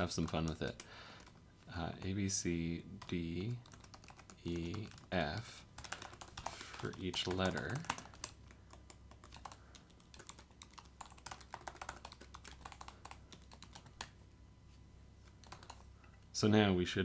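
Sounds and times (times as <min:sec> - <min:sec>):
typing on computer keyboard: 0:00.0 - 0:01.4, 0:03.0 - 0:14.2, 0:15.4 - 0:15.8.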